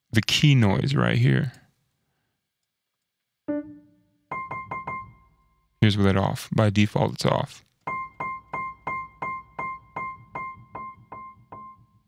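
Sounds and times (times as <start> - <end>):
muted piano note: 3.5 - 5.4.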